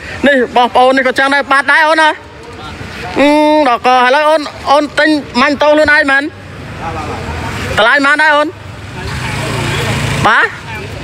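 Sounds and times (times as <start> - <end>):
people talking: 0.2 - 11.0.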